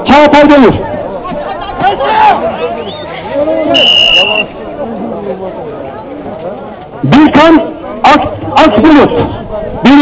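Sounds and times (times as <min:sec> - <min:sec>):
crowd talking: 0:00.0 - 0:10.0
shrill whistle blast: 0:03.7 - 0:04.5.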